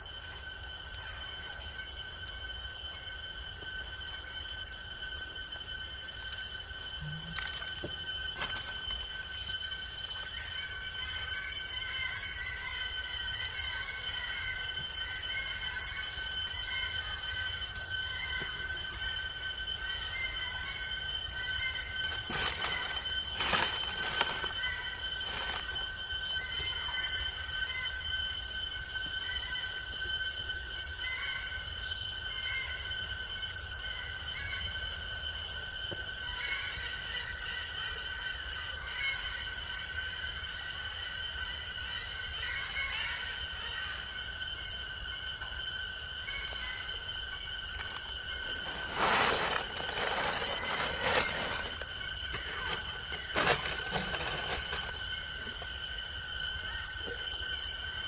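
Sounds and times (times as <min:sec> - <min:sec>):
insects droning: 0:00.0 - 0:58.0.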